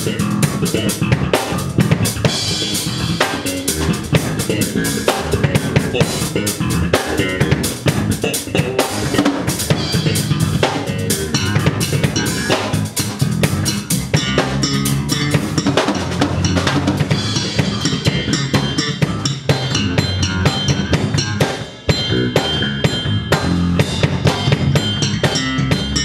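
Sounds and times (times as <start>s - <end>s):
drum kit: 0.0s - 26.0s
electric bass guitars: 0.0s - 26.0s.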